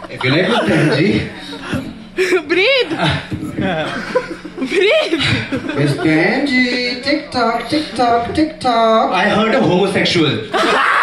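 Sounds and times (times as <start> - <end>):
person chuckling: 0.0 - 7.0.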